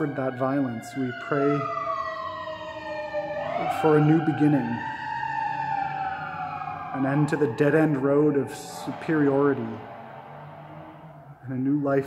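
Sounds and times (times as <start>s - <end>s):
emergency siren wailing: 0.0s - 12.0s.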